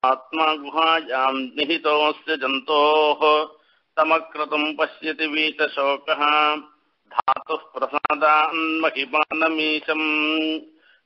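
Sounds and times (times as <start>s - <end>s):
man chanting: 0.0s - 10.8s.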